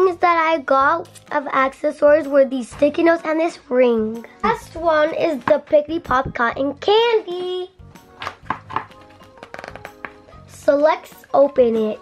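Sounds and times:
soft background music: 0.0 - 12.0
plastic package crackling: 8.2 - 10.4.

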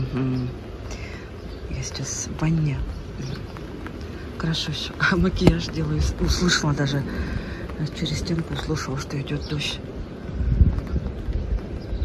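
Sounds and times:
light rain hissing: 0.0 - 12.0.

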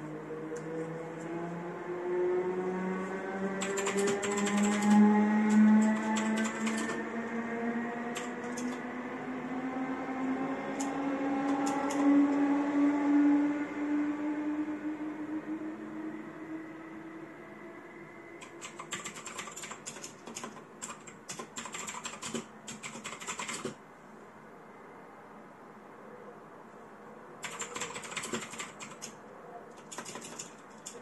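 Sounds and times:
steady hum rising in pitch: 0.0 - 18.4
mechanical keyboard typing: 3.6 - 7.0, 8.1 - 8.8, 10.8 - 12.1, 18.4 - 23.8, 27.4 - 29.2, 29.8 - 31.0.

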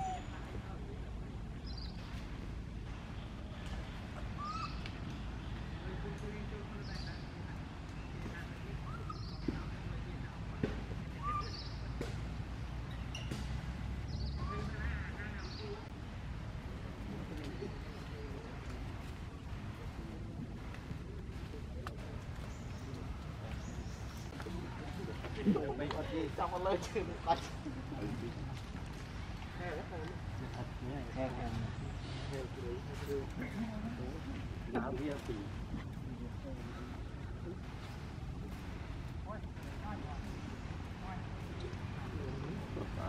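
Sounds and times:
low outdoor background: 0.0 - 43.0.

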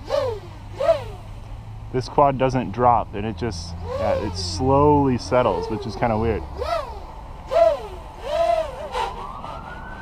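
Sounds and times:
drone motors revving: 0.0 - 10.0
steady low hum: 0.0 - 10.0.

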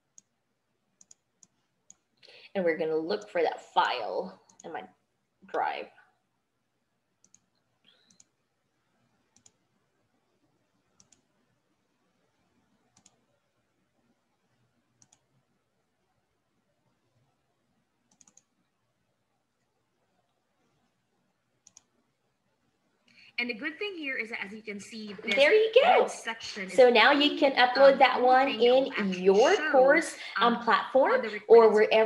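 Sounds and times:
computer mouse clicks: 1.0 - 2.1, 7.2 - 8.4, 9.2 - 9.6, 10.9 - 11.4, 12.7 - 13.4, 14.9 - 15.5, 18.1 - 18.7, 21.6 - 22.0
faint computer mouse double-clicks: 7.2 - 8.4, 9.4 - 9.6.

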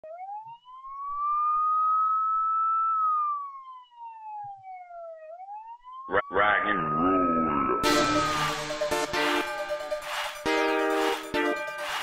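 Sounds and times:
siren wailing: 0.0 - 11.8.

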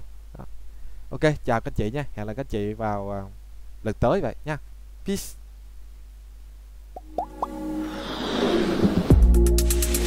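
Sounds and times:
faint low hum: 0.0 - 7.5
rising blips: 7.0 - 9.1
rushing whoosh: 7.5 - 9.2.

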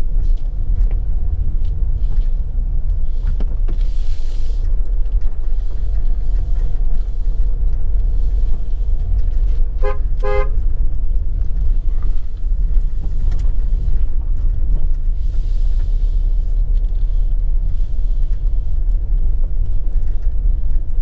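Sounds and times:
vehicle driving on road: 0.0 - 21.0
car horn toots: 9.8 - 10.6.

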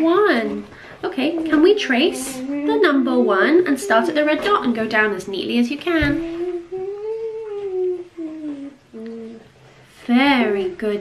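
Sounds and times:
person humming: 1.3 - 4.2, 6.1 - 9.6.

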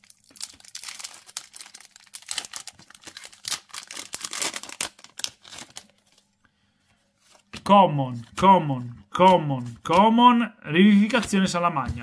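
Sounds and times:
foil wrapper tearing and crinkling: 0.0 - 6.2.

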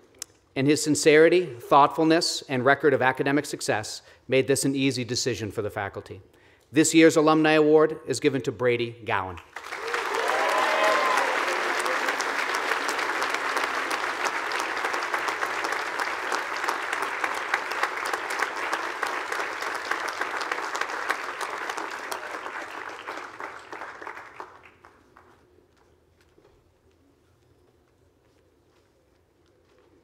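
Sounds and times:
crowd applauding: 9.5 - 25.4.

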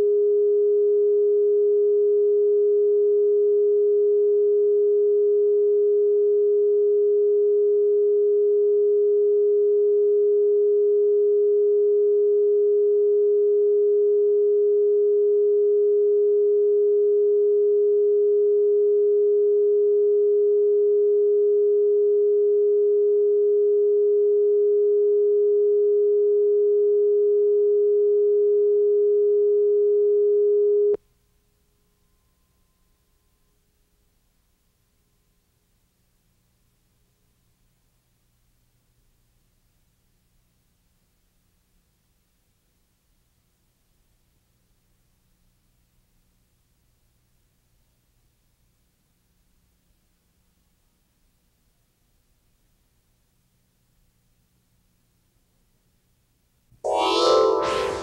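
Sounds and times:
steady sine test tone: 0.0 - 37.6, 56.8 - 58.0.

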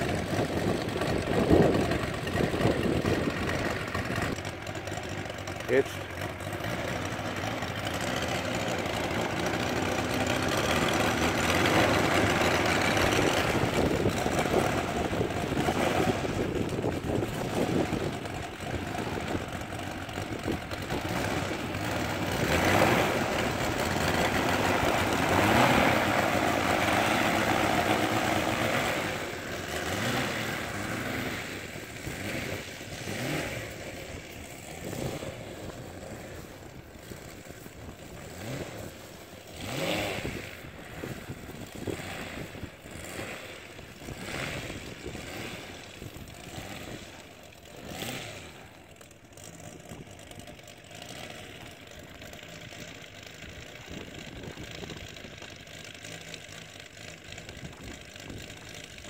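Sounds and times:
model plane engine revving: 0.0 - 59.0.

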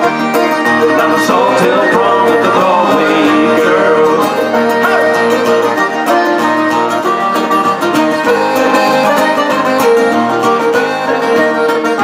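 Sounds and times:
button accordion melody: 0.0 - 12.0
strummed acoustic guitar: 0.0 - 12.0.

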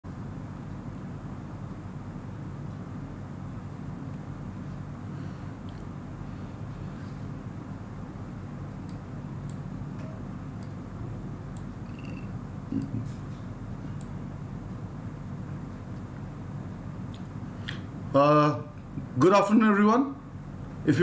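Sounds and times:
steady low hum: 0.1 - 21.0.

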